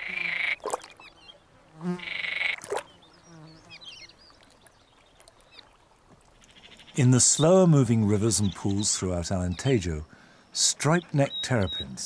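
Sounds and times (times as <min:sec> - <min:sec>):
frogs croaking: 0:00.0 - 0:01.2, 0:01.9 - 0:12.0.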